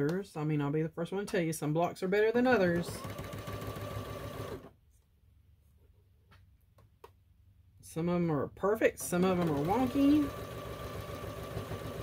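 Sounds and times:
sewing machine running: 2.6s - 4.7s, 9.0s - 12.0s.

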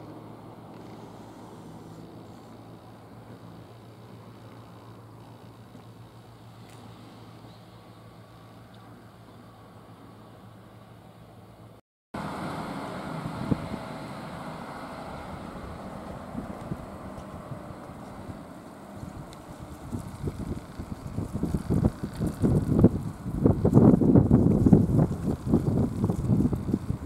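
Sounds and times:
outdoor street noise: 0.0s - 27.0s
wind buffeting microphone: 13.1s - 14.2s, 15.1s - 27.0s.

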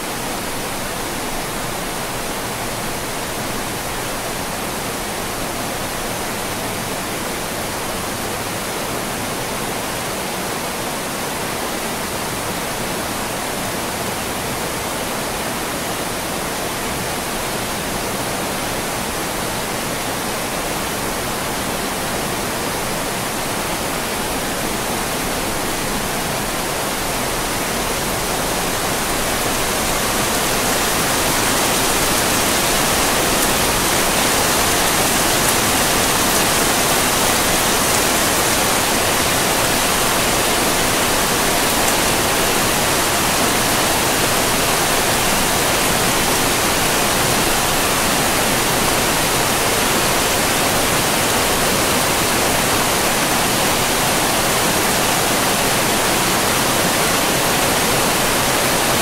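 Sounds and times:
waterfall rushing: 0.0s - 59.0s.

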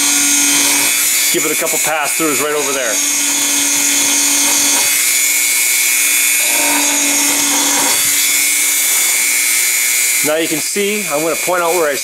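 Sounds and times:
rotary tool grinding wood: 0.0s - 11.8s
low hum: 2.9s - 10.0s.

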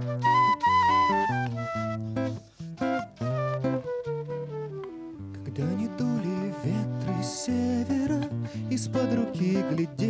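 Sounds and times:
acoustic guitar accompaniment: 0.0s - 10.0s
flute melody: 0.0s - 10.0s.

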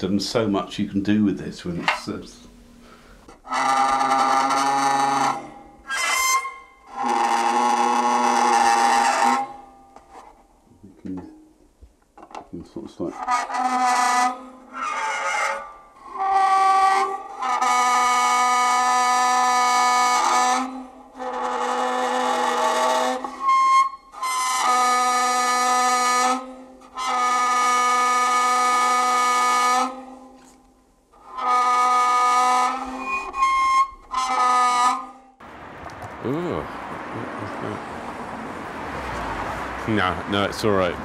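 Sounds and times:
bowed tones on found-object instrument: 1.7s - 10.4s, 12.3s - 30.6s, 31.2s - 35.2s.

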